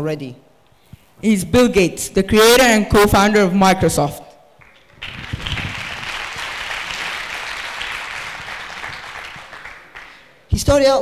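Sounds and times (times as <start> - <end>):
audience applauding: 4.6 - 10.4.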